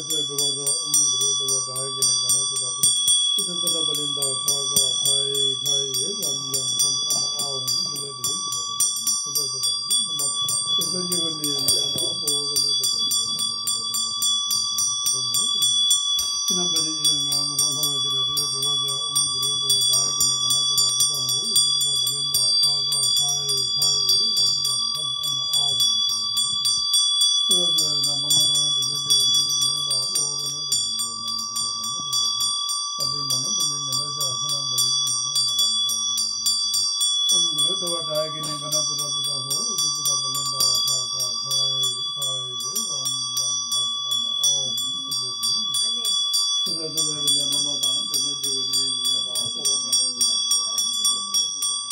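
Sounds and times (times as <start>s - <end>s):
man chanting prayers: 0.0s - 51.9s
small bell ringing rapidly: 0.0s - 51.9s.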